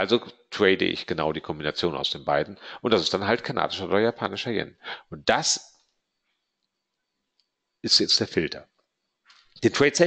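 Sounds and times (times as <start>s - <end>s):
man speaking: 0.0s - 5.7s, 7.9s - 8.6s, 9.6s - 10.0s.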